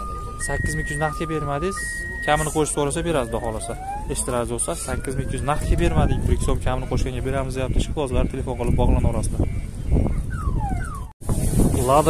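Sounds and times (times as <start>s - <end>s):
background chatter: 0.0s - 10.4s.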